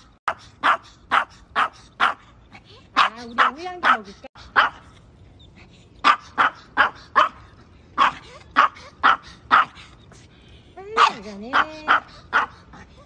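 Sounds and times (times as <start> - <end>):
small dog barking: 0.3 - 2.2, 3.0 - 4.9, 6.0 - 9.8, 11.0 - 12.8.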